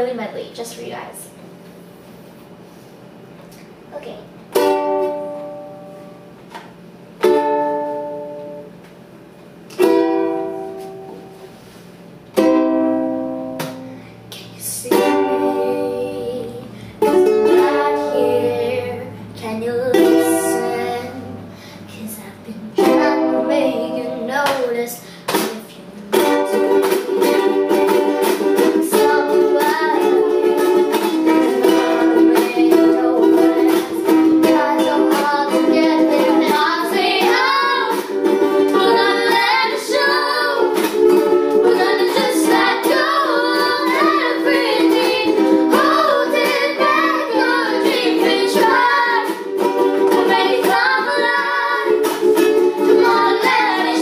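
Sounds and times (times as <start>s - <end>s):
ukuleles strumming: 0.0s - 54.0s
children singing: 14.6s - 21.5s, 26.1s - 54.0s.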